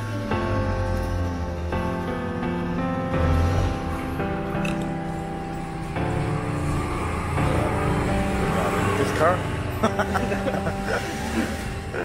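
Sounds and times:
background music: 0.0 - 12.0
truck engine running: 0.3 - 12.0.

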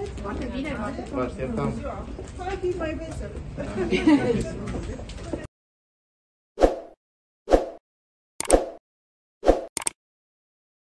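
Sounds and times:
dull pop sound effects: 8.4 - 8.8.

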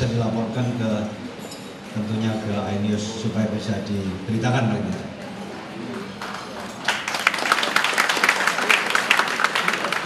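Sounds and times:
audience applause: 5.8 - 10.0.

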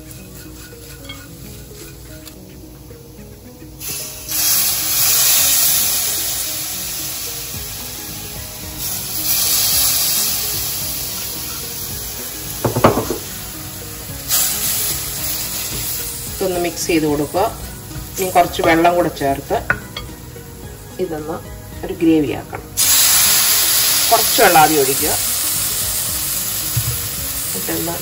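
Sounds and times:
background music: 0.0 - 28.0
masala sizzling in a pot: 0.0 - 28.0
sharp knock: 12.6 - 13.2.

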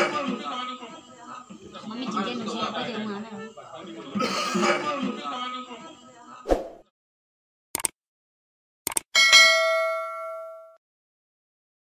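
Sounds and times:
bright bell ding: 9.2 - 10.8.

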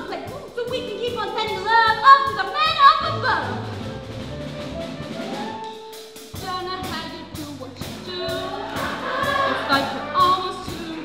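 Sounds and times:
live band playing: 0.0 - 11.0
steady drum beat: 0.0 - 11.0
chorus singing gospel-style: 8.4 - 10.2.

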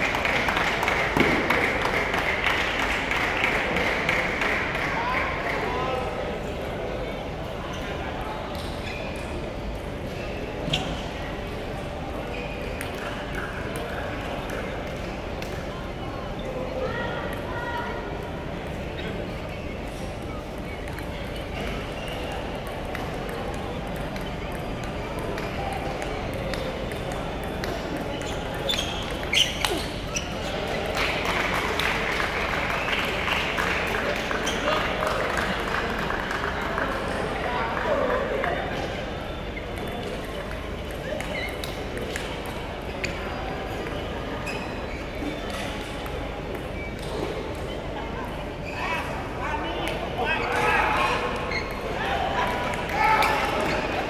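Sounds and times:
voices echoing in a hall: 0.0 - 54.0
table tennis balls clicking: 20.5 - 33.8, 39.7 - 44.0.

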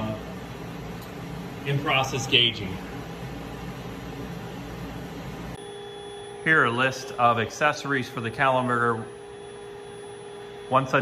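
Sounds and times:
machinery hiss over low hum: 0.0 - 5.6
electrical hum: 0.0 - 11.0
thin high steady tone: 5.5 - 11.0.

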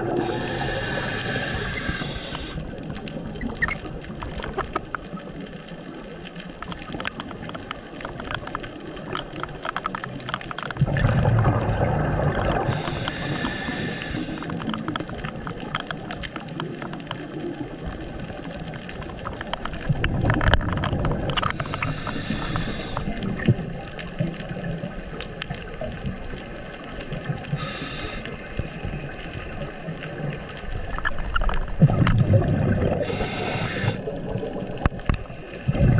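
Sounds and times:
exhaust bubbles bubbling: 0.0 - 2.6, 10.8 - 13.9, 31.8 - 34.8, 35.7 - 35.9
steady underwater hiss: 0.0 - 35.9
scuba regulator hissing: 0.1 - 2.6, 12.7 - 14.5, 21.6 - 23.2, 27.6 - 28.3, 33.0 - 34.0.

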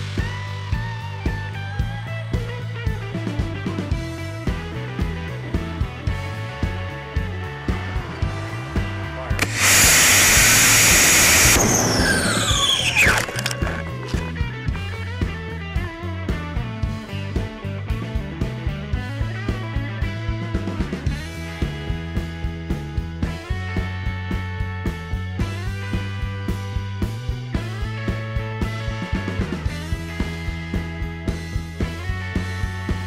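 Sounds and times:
rock music: 0.0 - 33.0
whine falling in pitch: 9.4 - 14.0
rocket motor rushing hiss: 9.4 - 14.3.

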